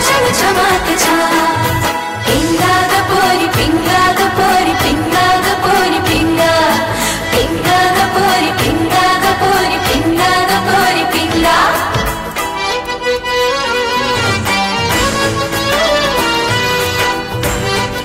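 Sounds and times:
fast drum beat: 0.0 - 12.5
women singing: 0.0 - 12.6
instrumental backing: 0.0 - 18.0.

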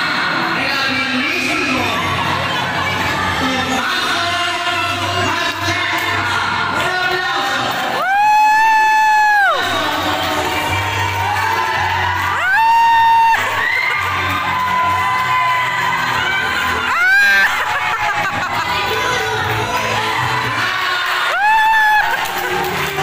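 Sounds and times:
music playing: 0.0 - 23.0
crowd cheering: 6.0 - 23.0.

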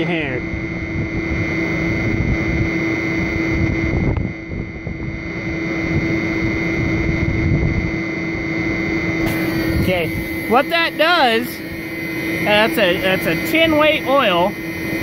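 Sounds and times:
high steady whine: 0.0 - 15.0
pump motor hum: 0.0 - 15.0.

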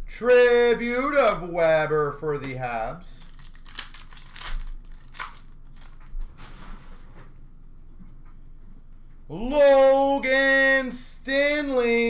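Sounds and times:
wrapper being torn and crinkled: 3.1 - 6.1.

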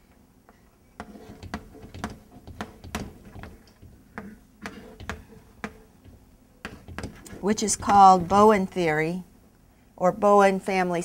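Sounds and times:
chalk tapping and scraping on board: 1.0 - 8.4.

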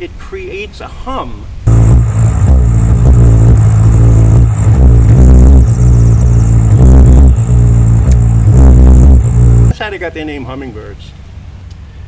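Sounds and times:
hummingbird wings buzzing: 1.7 - 9.7.

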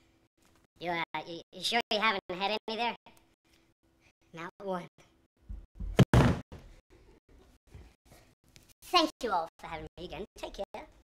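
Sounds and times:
body thud on wooden stage: 5.5 - 6.7.

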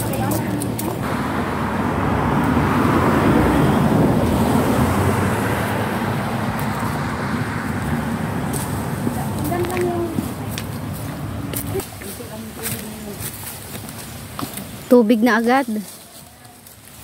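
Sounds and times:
vehicle passing: 0.0 - 12.5.

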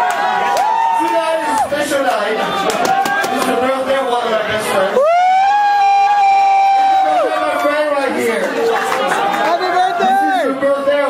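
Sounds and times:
high-pitched whoop: 0.4 - 1.6, 5.0 - 7.3.

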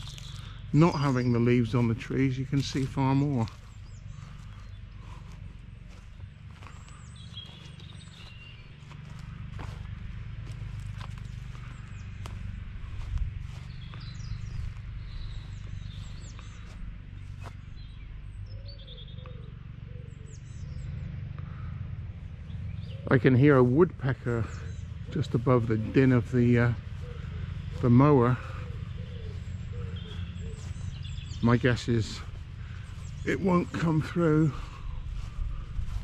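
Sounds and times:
lawn mower engine running: 0.0 - 17.5, 20.8 - 36.0
birds chirping: 0.0 - 36.0.

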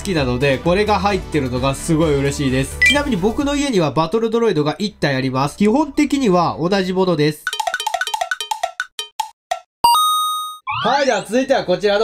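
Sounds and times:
bright chime ringing: 2.8 - 3.1
cowbell-like plinks: 7.5 - 9.4.

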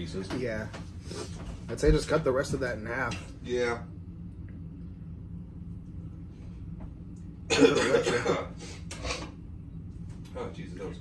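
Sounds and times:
man coughing: 7.5 - 8.8.

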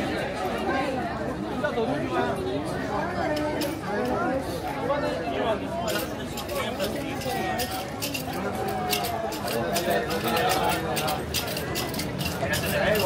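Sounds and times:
people talking: 0.0 - 13.0.

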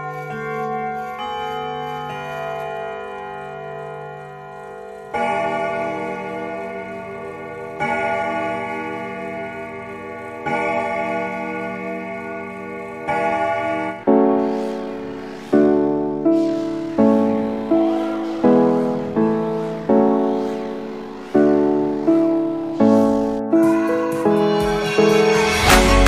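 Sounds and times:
deep clock strikes: 0.0 - 24.1
clock chime tune: 0.0 - 24.4.

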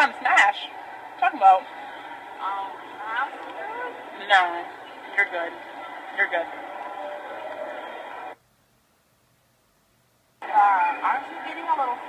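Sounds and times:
background hubbub: 0.0 - 8.4, 10.4 - 12.0.

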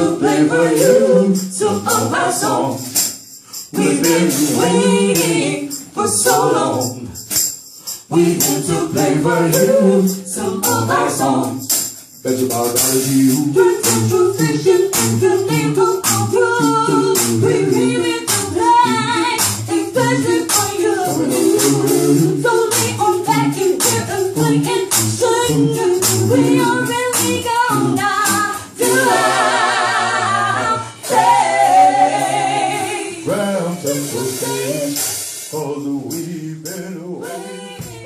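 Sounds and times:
voices singing: 0.0 - 7.3, 8.1 - 38.0
tambourine beat: 0.0 - 38.0
live funk band playing: 9.0 - 32.4.

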